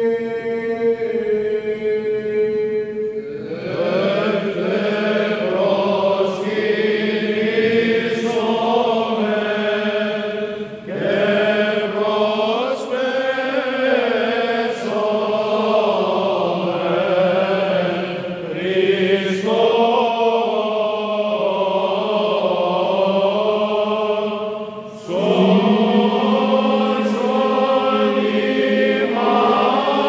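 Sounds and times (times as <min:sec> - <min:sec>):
male voices chanting: 0:03.2 - 0:30.0.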